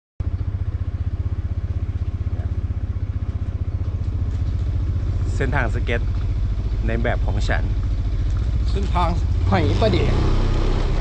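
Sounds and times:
engine idling: 0:00.2 - 0:11.0.

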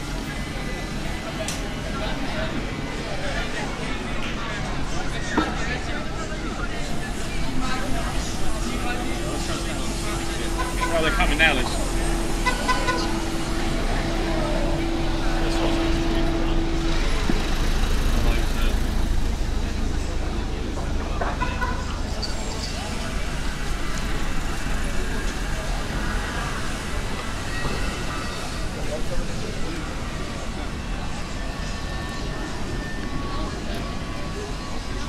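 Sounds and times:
people talking: 0:00.0 - 0:35.0.

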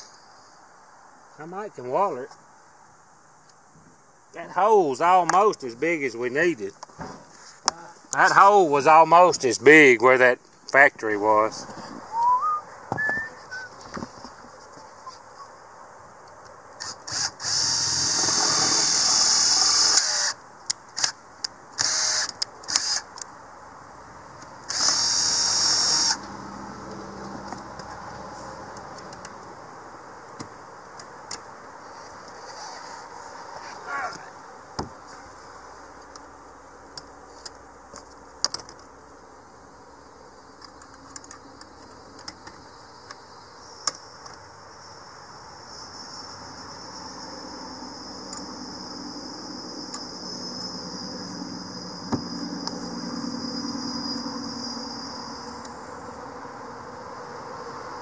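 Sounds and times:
cordless drill whining: 0:16.8 - 0:20.4, 0:21.8 - 0:23.0, 0:24.7 - 0:26.2.

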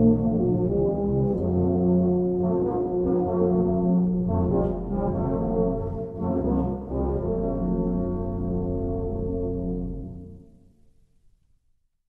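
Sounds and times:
brass band playing chords: 0:00.0 - 0:10.3.

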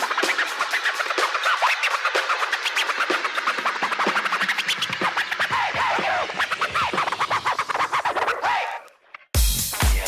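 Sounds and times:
house music: 0:00.0 - 0:10.0
record scratching: 0:00.0 - 0:10.0.

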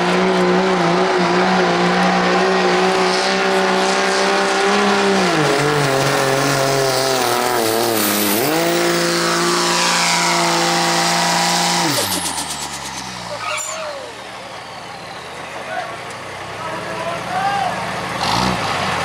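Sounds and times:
diesel truck engine at full throttle: 0:00.0 - 0:19.0
crowd noise and voices: 0:12.2 - 0:18.0.

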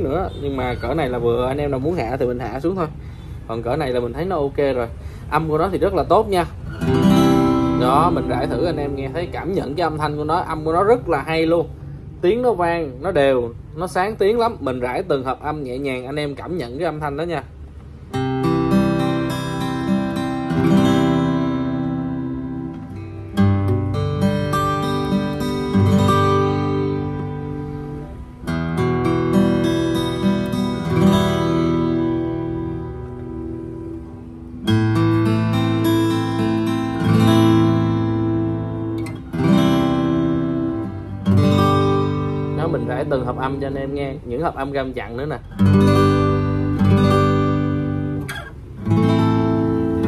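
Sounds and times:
fingerpicked acoustic guitar: 0:00.0 - 0:13.1, 0:14.3 - 0:50.0.

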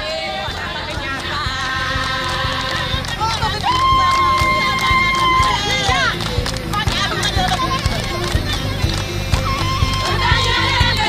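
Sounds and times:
drum beating: 0:00.0 - 0:11.0
women singing: 0:00.0 - 0:11.0.

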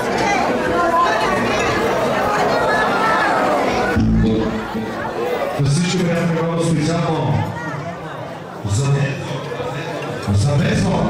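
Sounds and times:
babble of a full hall: 0:00.0 - 0:11.0
overlapping chatter close by: 0:00.0 - 0:11.0.

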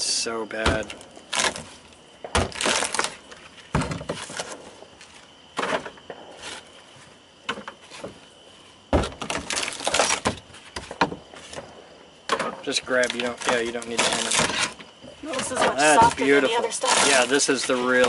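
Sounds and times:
wood splintering and cracking: 0:00.6 - 0:04.6, 0:09.0 - 0:11.6, 0:12.3 - 0:18.0.

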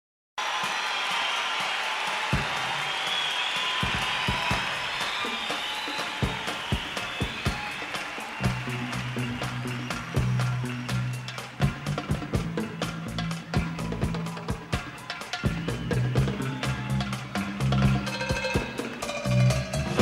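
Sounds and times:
crowd cheering and clapping: 0:00.4 - 0:20.0.

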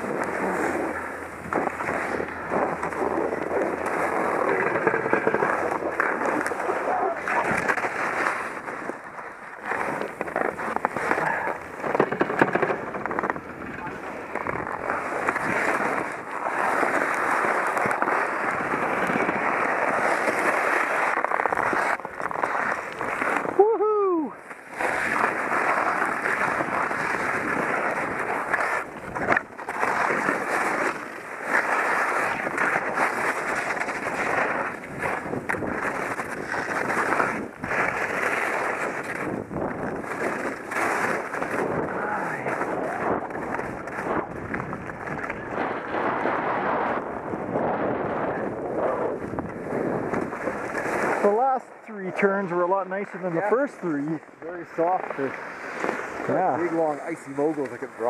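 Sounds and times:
skis scraping over ice: 0:00.0 - 0:58.0
wind on microphone: 0:32.1 - 0:51.3.

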